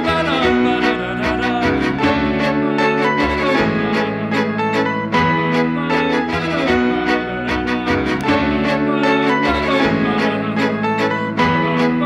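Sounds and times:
bowed violin: 0:00.0 - 0:12.0
held low notes: 0:00.0 - 0:12.0.

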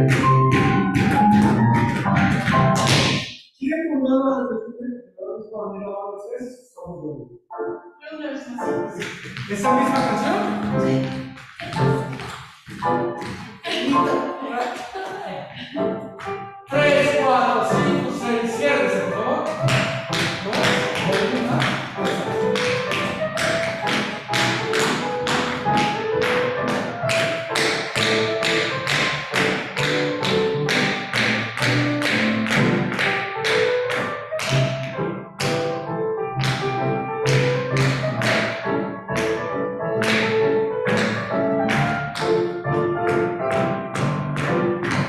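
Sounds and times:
recorded music: 0:00.0 - 0:45.0
tap shoes on hard floor: 0:00.1 - 0:03.2, 0:09.0 - 0:13.8.

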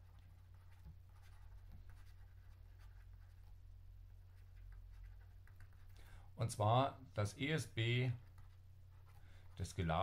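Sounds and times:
stylus scratching on pen tablet: 0:00.0 - 0:03.6, 0:04.2 - 0:06.0.

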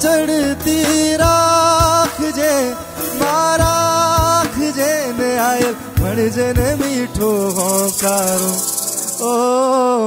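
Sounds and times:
man singing held notes: 0:06.0 - 0:10.0
fast high rattle: 0:07.2 - 0:09.6.

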